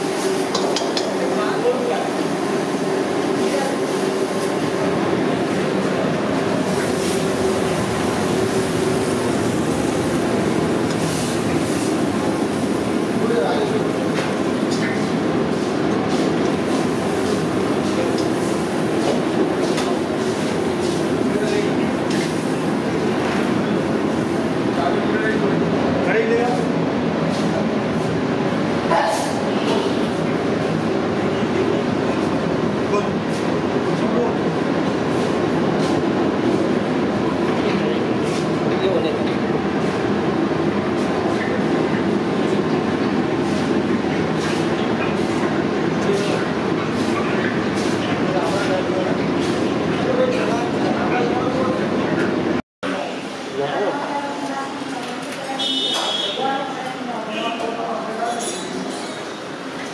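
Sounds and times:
wok station gas flame rumble: 0:00.0 - 0:59.9.

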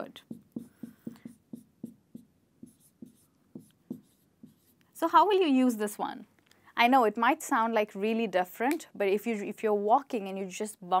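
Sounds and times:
marker pen writing on whiteboard: 0:00.0 - 0:05.0.

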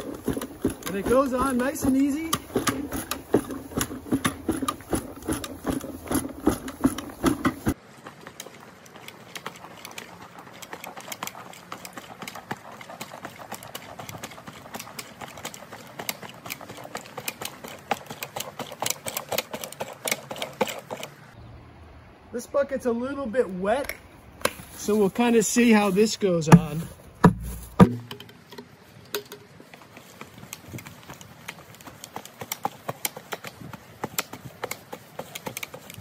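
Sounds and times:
broadcast spreader clicking: 0:00.0 - 0:07.8.

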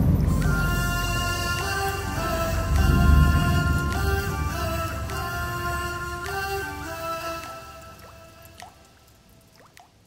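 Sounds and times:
song music: 0:00.0 - 0:08.8
water drops plinking into water: 0:07.4 - 0:10.0.

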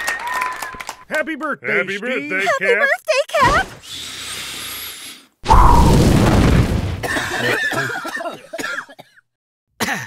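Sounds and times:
person coughing: 0:07.0 - 0:09.2, 0:09.8 - 0:10.0.

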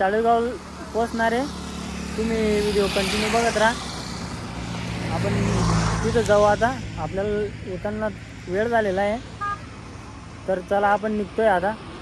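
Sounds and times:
highway traffic engine hum: 0:00.0 - 0:12.0.

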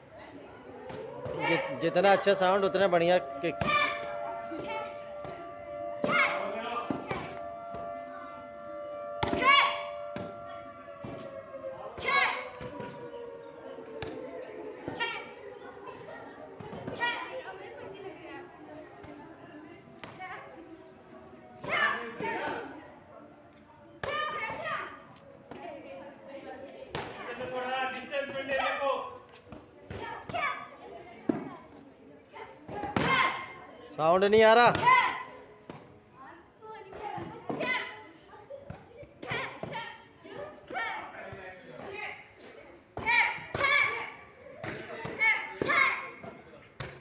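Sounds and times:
children chattering: 0:00.0 - 0:34.0, 0:34.8 - 0:47.0
young voices shouting: 0:00.4 - 0:17.8.

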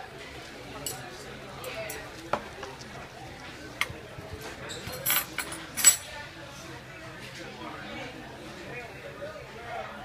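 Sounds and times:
murmur of diners: 0:00.0 - 0:10.0
tableware clattering: 0:04.5 - 0:06.2.

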